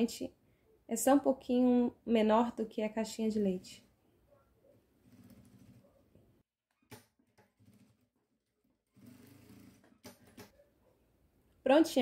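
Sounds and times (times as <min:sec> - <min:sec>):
sewing machine stitching: 0:05.0 - 0:06.0, 0:06.8 - 0:10.6.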